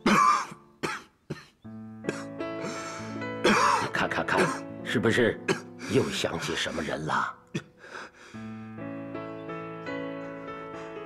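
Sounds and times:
man coughing hard: 0:00.0 - 0:02.3, 0:03.4 - 0:04.6, 0:05.5 - 0:06.1, 0:07.5 - 0:07.7
soft background music: 0:00.0 - 0:11.0.

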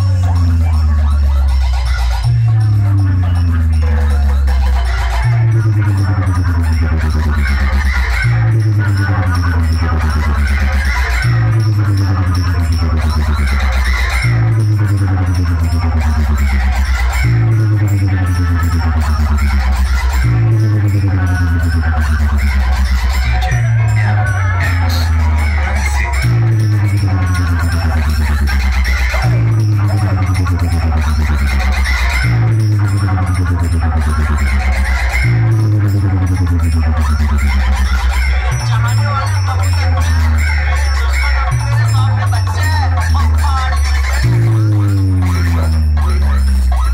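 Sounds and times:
loud electronic dance music: 0:00.0 - 0:46.9.

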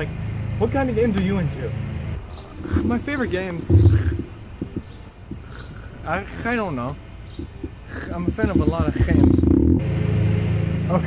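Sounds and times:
wind rumble on microphone: 0:02.2 - 0:05.8, 0:07.3 - 0:09.8.

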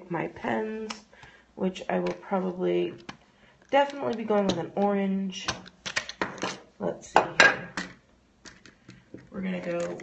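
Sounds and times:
plastic pens clicking and clattering: 0:03.0 - 0:06.6, 0:07.8 - 0:10.0.

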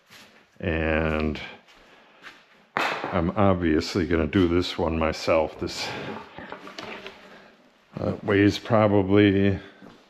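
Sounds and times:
man speaking: 0:00.6 - 0:01.7, 0:03.0 - 0:06.4, 0:07.9 - 0:09.8.

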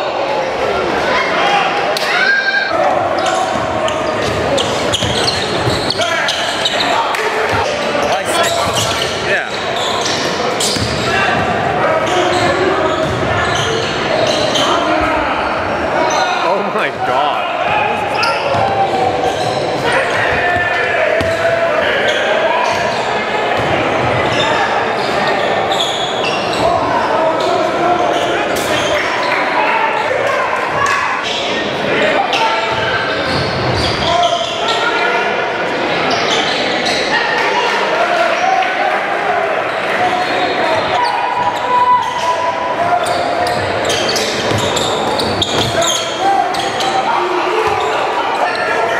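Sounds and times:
crowd chatter and shouting: 0:00.0 - 0:48.9
basketball bouncing on court: 0:10.0 - 0:11.6, 0:18.4 - 0:19.5, 0:20.2 - 0:21.5, 0:44.4 - 0:45.8.

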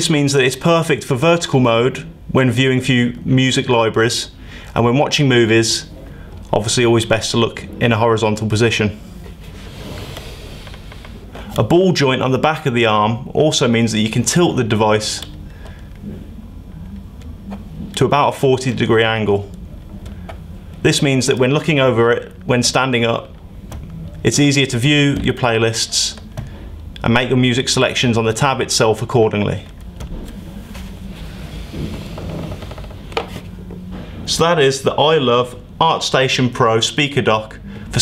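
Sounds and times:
low room hum: 0:00.0 - 0:38.0
faint rubbing of plastic: 0:30.2 - 0:33.5.

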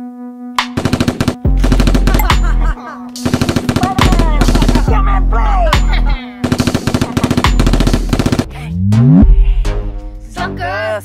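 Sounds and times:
background music: 0:00.0 - 0:11.0
rapid automatic gunfire: 0:00.7 - 0:02.3, 0:03.2 - 0:04.9, 0:06.4 - 0:08.5.

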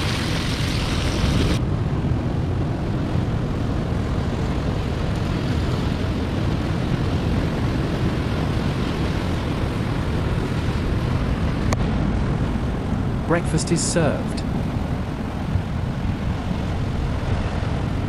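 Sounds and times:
surf breaking on rocks: 0:00.0 - 0:01.6
wind on microphone: 0:00.0 - 0:13.4, 0:14.3 - 0:18.0.

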